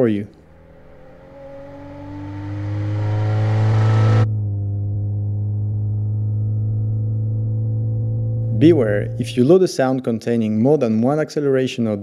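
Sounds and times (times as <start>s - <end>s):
muffled engine drone in cabin: 0.0s - 9.6s
car engine accelerating: 0.0s - 9.8s.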